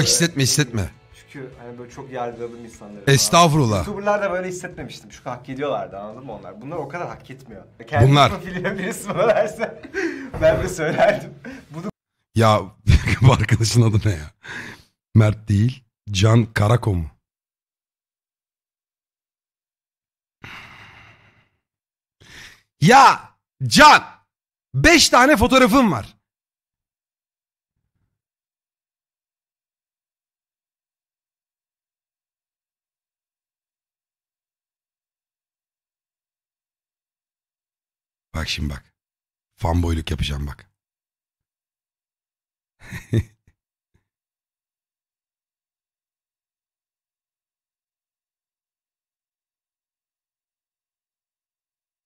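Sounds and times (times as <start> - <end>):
man speaking: 0.0 - 14.3, 22.8 - 24.1, 24.8 - 26.1
faint breath: 9.9 - 10.3, 14.4 - 15.0, 20.4 - 21.6, 22.2 - 22.7
man sighing: 9.9 - 10.4, 20.4 - 21.5.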